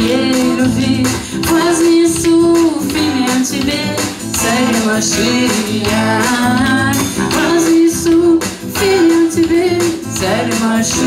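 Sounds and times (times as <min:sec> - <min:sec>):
strummed acoustic guitar: 0:00.0 - 0:11.0
woman singing a worship song: 0:00.0 - 0:11.0.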